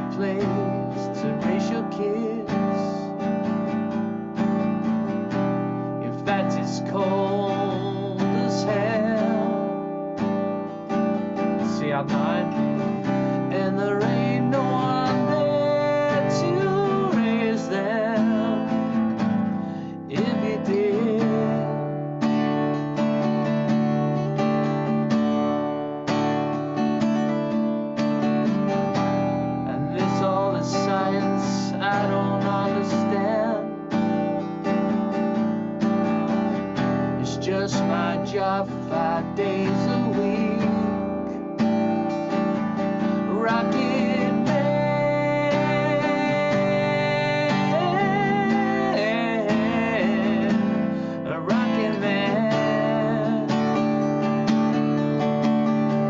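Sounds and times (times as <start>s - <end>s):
man singing: 0.0s - 3.5s, 6.0s - 10.1s, 11.2s - 22.1s, 29.6s - 34.3s, 36.8s - 41.6s, 42.8s - 54.4s
acoustic guitar strumming: 0.0s - 56.0s.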